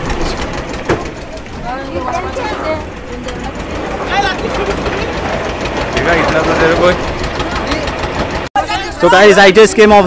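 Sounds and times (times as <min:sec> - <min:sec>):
men talking: 0:02.0 - 0:10.0.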